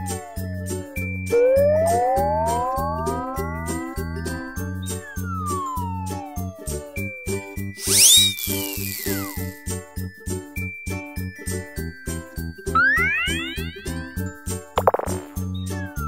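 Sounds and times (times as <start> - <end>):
bouncy cartoon music: 0.0 - 9.7, 11.2 - 16.0
whistling glide: 0.0 - 9.8, 11.6 - 14.6
rising swoops: 1.3 - 7.0, 7.8 - 9.6, 12.8 - 14.2
light tinkling: 6.9 - 14.8.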